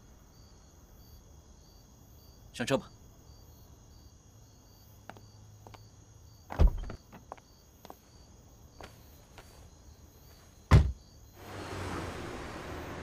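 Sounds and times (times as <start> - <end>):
car door thud: 10.7 - 11.0.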